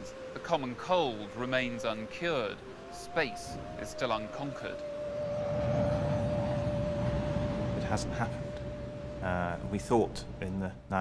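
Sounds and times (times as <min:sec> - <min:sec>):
steady humming tone: 0:02.5 - 0:10.9
flying craft rumbling: 0:02.6 - 0:10.5.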